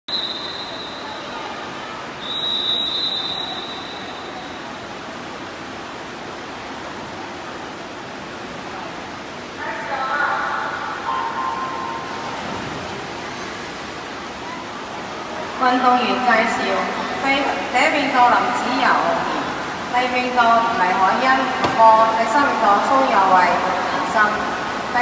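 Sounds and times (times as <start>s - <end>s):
referee's whistle blast: 0.1s - 1.3s, 2.2s - 4.6s
crowd noise: 0.1s - 25.0s
pool ambience hiss: 0.1s - 25.0s.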